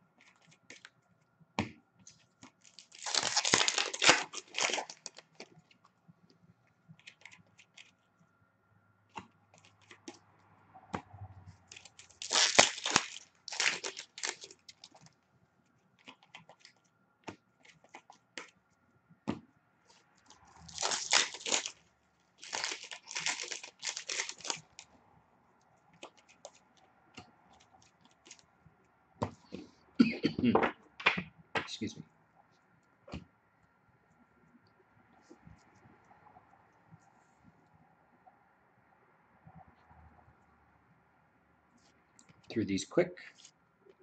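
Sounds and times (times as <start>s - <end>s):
foil wrappers tearing and crinkling: 2.6s - 5.5s, 11.7s - 15.0s, 20.6s - 21.8s, 22.4s - 24.8s.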